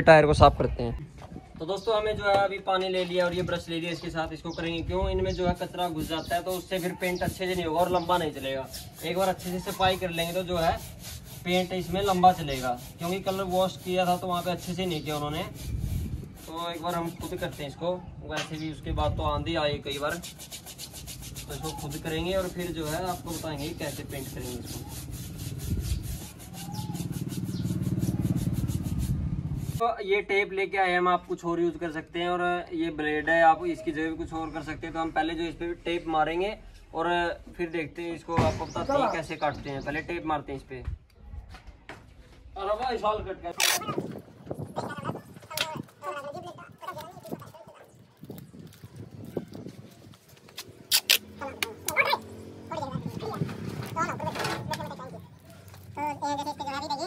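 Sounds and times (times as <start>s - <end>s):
wet sponge scrubbing rubber tyre: 5.3s - 17.8s, 19.9s - 29.8s
people talking: 44.8s - 48.0s, 51.4s - 55.3s.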